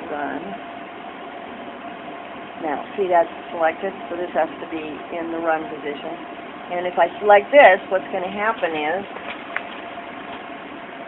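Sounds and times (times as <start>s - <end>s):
faint constant tone: 0.0s - 11.0s
refrigeration unit humming: 0.0s - 11.0s.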